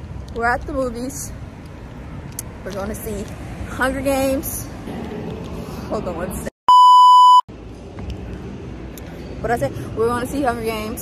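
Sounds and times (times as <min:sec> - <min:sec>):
low background noise: 0:00.0 - 0:11.0
test tone beep: 0:06.7 - 0:07.5.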